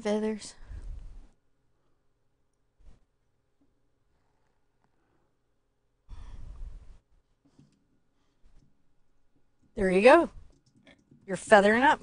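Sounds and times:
person exhaling into microphone: 6.1s - 7.0s.

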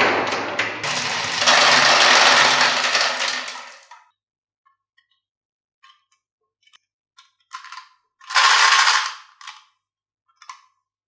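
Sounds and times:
marbles rattling in plastic jar: 0.8s - 3.9s, 7.6s - 9.6s.

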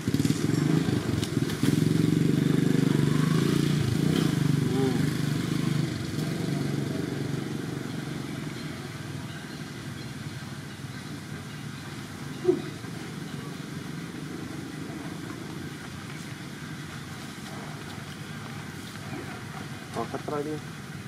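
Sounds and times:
distant engine rumble: 0.0s - 21.0s.

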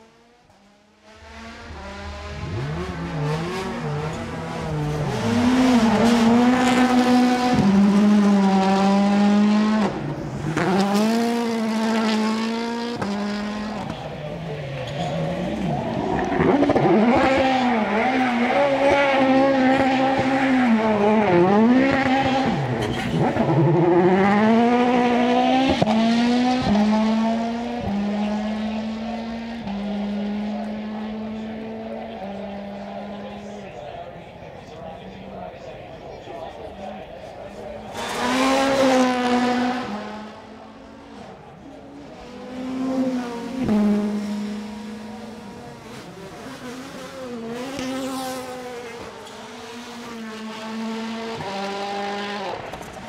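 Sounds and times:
rally car engine at full throttle: 0.0s - 53.0s.

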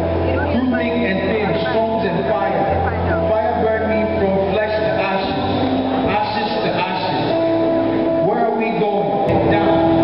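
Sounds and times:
background music with held note: 0.0s - 10.0s
man reciting a poem: 0.4s - 7.4s, 8.2s - 10.0s.

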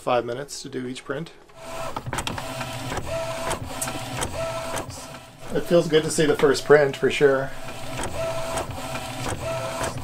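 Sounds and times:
printer carriage whirring: 1.5s - 10.0s
printer carriage clicks: 1.9s - 4.9s.

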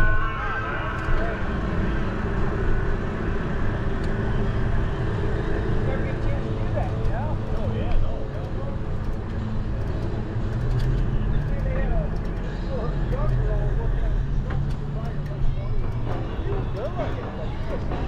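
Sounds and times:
road and wind noise: 0.0s - 18.0s
vehicle motor hum: 0.0s - 18.0s.

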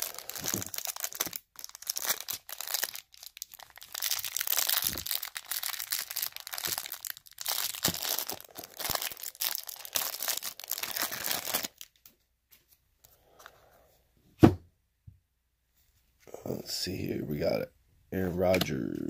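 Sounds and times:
plastic wrapper tearing and crinkling: 0.0s - 12.1s.

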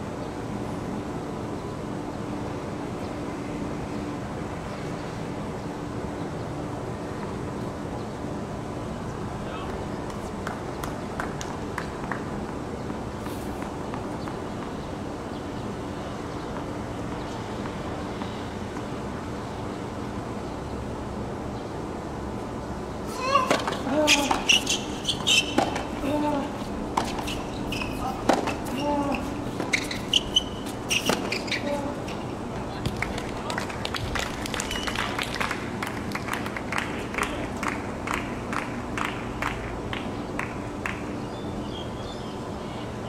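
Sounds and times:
tennis ball bouncing: 23.2s - 32.2s
rackets striking tennis ball: 23.2s - 33.3s.

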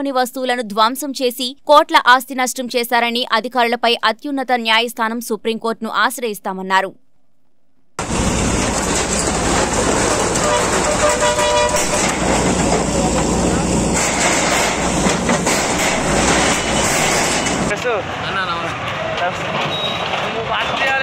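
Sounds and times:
diesel engine running: 8.0s - 18.3s
metal sheets clattering and crashing: 13.9s - 17.7s.

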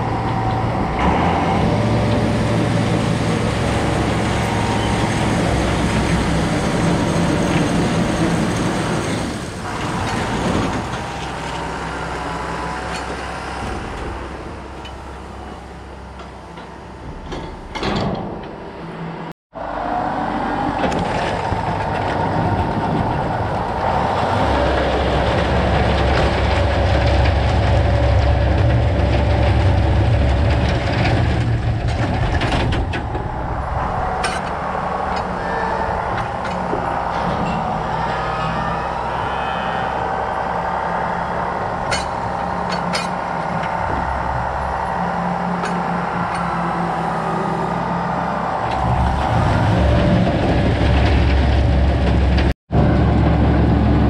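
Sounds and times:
tractor engine rumble: 0.0s - 54.0s
straw chopper whine: 20.9s - 54.0s.

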